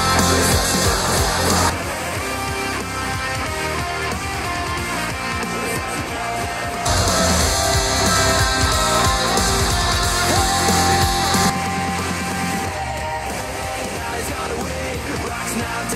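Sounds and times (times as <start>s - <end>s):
hard rock with electric guitars: 0.0s - 15.9s.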